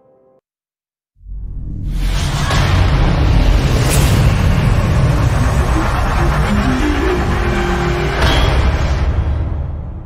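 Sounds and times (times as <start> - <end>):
whoosh: 1.3 - 9.8
deep steady rumble: 2.8 - 9.0.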